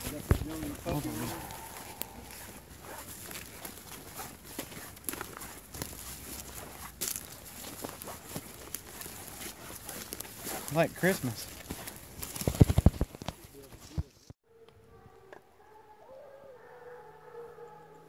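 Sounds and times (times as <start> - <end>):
footsteps through leaves and brush: 0.0 - 14.3.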